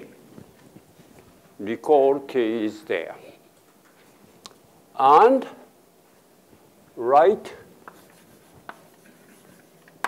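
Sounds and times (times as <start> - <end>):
chalk tap: 7.8 - 9.7
chalk scratching on blackboard: 7.8 - 9.8.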